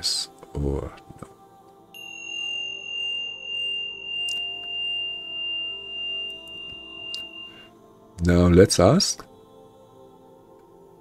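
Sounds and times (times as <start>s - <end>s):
low sustained tones: 1.9s - 9.0s
high ringing tone: 2.0s - 7.7s.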